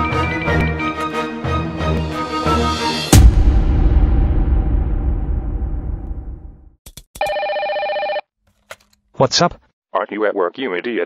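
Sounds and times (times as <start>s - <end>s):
electronic telephone ring: 7.2s - 8.3s.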